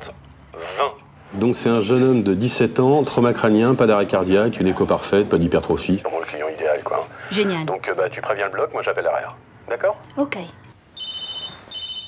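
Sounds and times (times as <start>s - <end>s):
telephone ringing: 10.9s - 12.0s.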